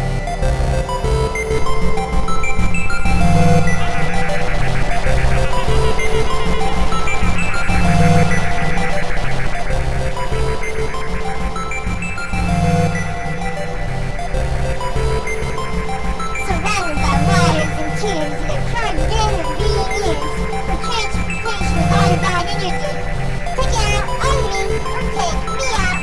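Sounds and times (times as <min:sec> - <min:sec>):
pulsing synth bass line: 0:00.0 - 0:26.0
synth lead notes: 0:00.0 - 0:26.0.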